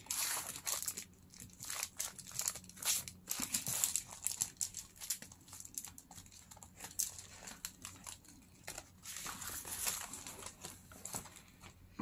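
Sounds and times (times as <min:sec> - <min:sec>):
paper rustling and crinkling: 0:00.0 - 0:11.8.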